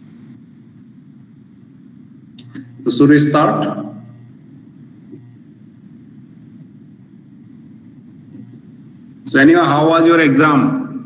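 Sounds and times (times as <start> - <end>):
open microphone rumble and hiss: 0.0 - 11.0.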